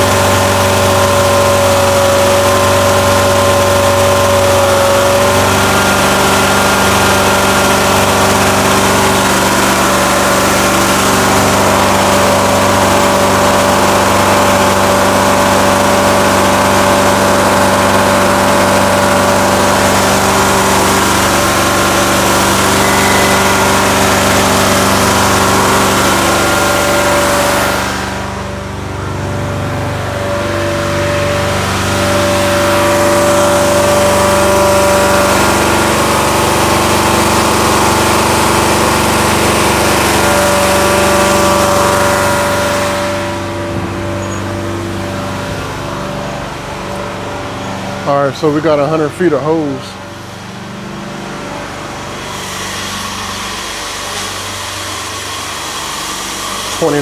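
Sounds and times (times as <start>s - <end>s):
engine running steadily: 0.0s - 57.0s.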